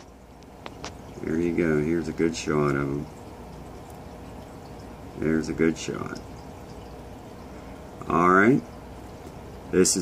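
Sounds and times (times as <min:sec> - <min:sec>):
aquarium filter water trickling: 0:00.0 - 0:10.0.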